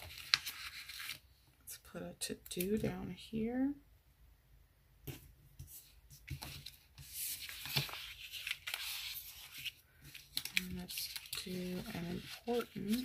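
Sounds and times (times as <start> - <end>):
paper rustling and crinkling: 0.0 - 1.2, 5.7 - 13.0.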